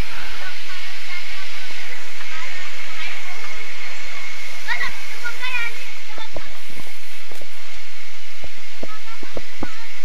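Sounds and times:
loud steady hiss: 0:00.0 - 0:10.0.

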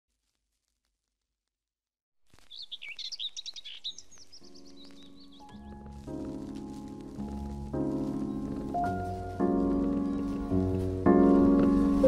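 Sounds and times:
birds chirping: 0:02.4 - 0:07.2, 0:07.8 - 0:12.0.

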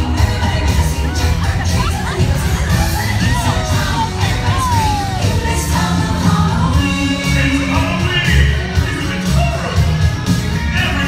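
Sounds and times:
crowd cheering and shouting: 0:00.0 - 0:11.0
parade music with heavy bass beat: 0:00.0 - 0:11.0.

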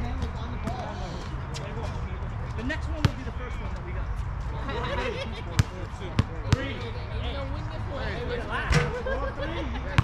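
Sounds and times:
players talking: 0:00.0 - 0:10.0.

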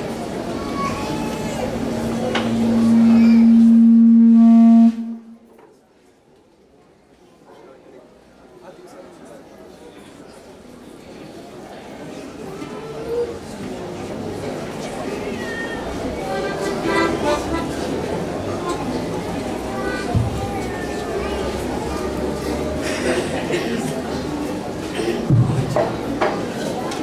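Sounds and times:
high-pitched voice sliding in pitch: 0:00.9 - 0:05.4
microphone feedback howling: 0:01.4 - 0:05.4.

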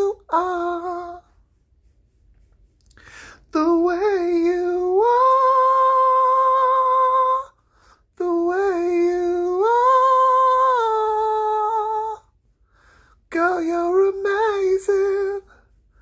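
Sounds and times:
man singing unaccompanied: 0:00.0 - 0:01.2, 0:03.4 - 0:07.6, 0:08.2 - 0:12.2, 0:13.3 - 0:15.6.

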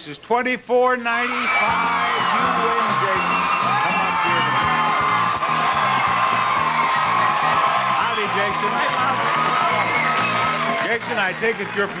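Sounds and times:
game-show band music: 0:01.2 - 0:12.0
studio audience cheering: 0:01.2 - 0:12.0.

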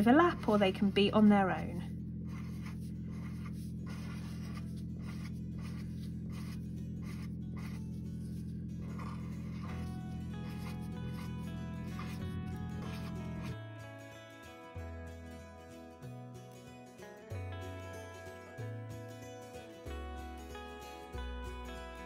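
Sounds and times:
steady low hum: 0:00.0 - 0:13.6
felt-tip pen scratching on paper: 0:02.2 - 0:13.6
background music with sustained notes: 0:02.3 - 0:22.0.

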